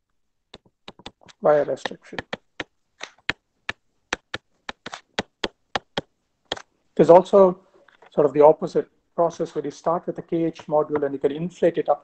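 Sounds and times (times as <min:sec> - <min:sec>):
stylus clicking on glass screen: 0:00.5 - 0:06.7.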